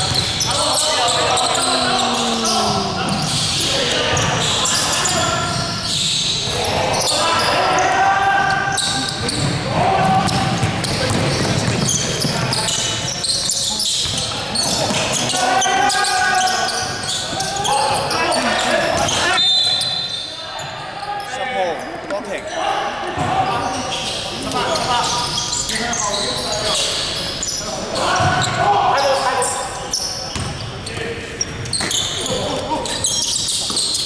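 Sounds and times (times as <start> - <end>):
basketball bouncing on wooden court: 0.0 - 0.5, 8.8 - 12.8, 30.3 - 30.6
players calling out: 0.0 - 21.8.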